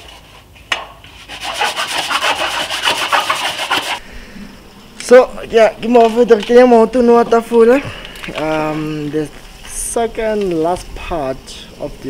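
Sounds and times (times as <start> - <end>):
hand sanding wood plank: 1.0 - 4.0.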